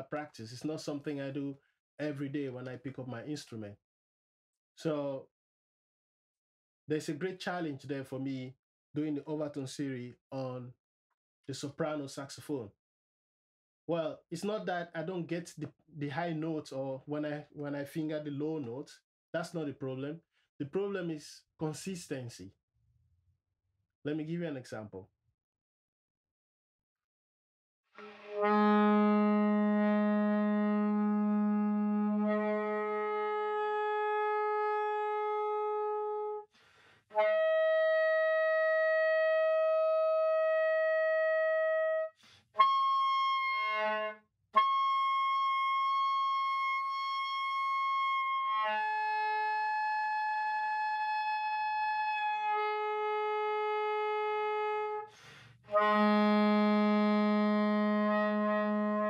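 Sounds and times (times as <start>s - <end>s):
soprano saxophone notes: 28.0s - 36.4s, 37.2s - 49.3s, 55.7s - 59.0s.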